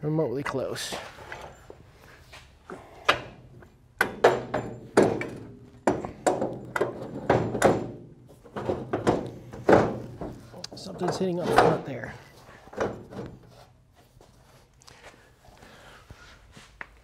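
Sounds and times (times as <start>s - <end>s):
metal clunks and knocks: 3.0s - 13.6s.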